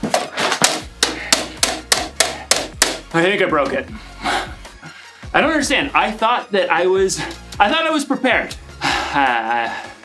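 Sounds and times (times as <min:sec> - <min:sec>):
hammer striking plastic casing: 0:00.0 - 0:03.8.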